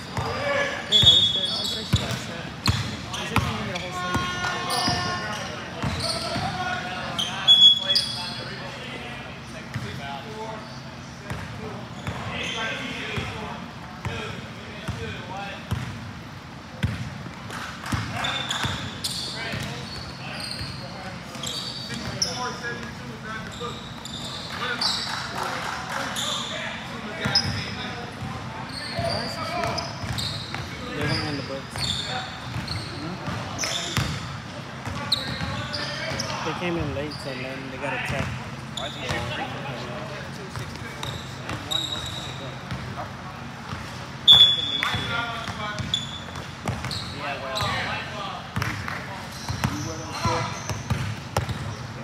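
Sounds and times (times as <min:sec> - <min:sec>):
sneaker squeaks: 0:00.0 - 0:08.8, 0:09.6 - 0:13.5, 0:16.8 - 0:25.3, 0:26.0 - 0:39.6, 0:40.5 - 0:52.0.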